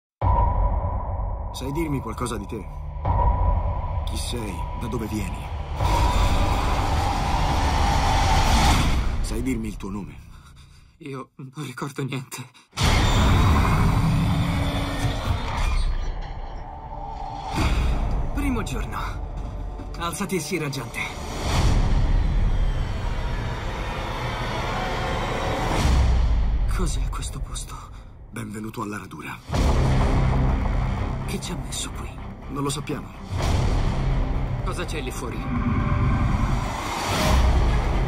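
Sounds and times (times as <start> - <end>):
music: 0.2 - 10.2, 12.9 - 38.0
deep rumble: 0.2 - 10.7, 29.5 - 38.0
deep boom: 29.5 - 32.5.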